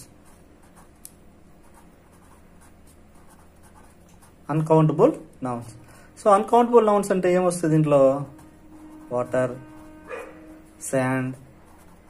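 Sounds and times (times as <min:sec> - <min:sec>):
marker pen scratching on paper: 0:00.0 - 0:04.7, 0:06.4 - 0:12.0.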